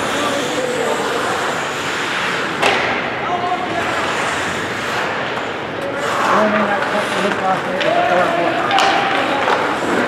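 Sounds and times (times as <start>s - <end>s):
skates hissing on ice: 0.0s - 2.6s, 3.7s - 7.6s
players calling out: 5.8s - 10.0s.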